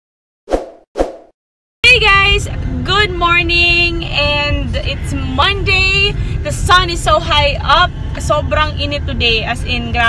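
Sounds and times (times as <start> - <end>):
woman's voice: 1.8 - 10.0.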